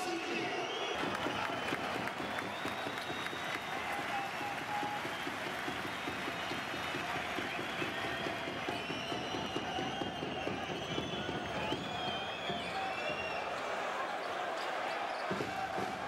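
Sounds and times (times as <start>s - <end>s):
crowd applauding: 0.0s - 16.0s
fans calling out: 0.0s - 16.0s.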